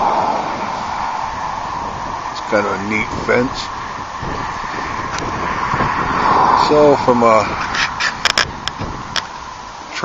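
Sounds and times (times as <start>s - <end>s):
wind on microphone: 0.0s - 9.9s
road traffic: 0.0s - 10.0s.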